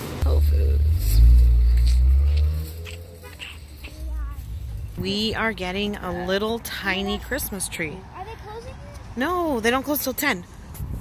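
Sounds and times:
car engine running: 0.2 - 6.0.

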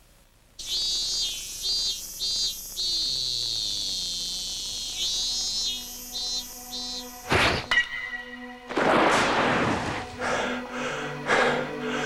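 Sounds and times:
high-pitched chirping tones: 0.6 - 8.3.

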